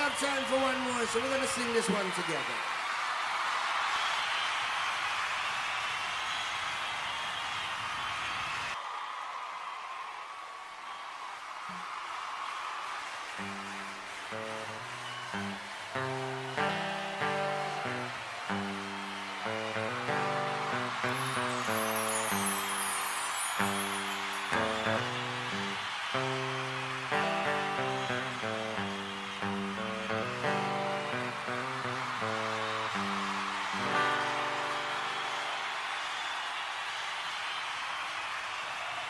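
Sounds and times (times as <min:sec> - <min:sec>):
crowd noise: 0:00.0 - 0:39.0
guitar picking a melody: 0:13.4 - 0:35.7.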